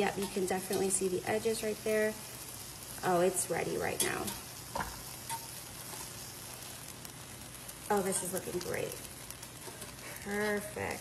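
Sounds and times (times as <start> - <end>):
batter and egg sizzling in a pan: 0.0 - 11.0.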